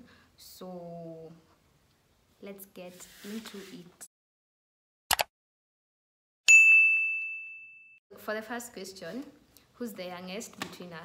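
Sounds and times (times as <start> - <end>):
bright bell ding: 6.5 - 8.0.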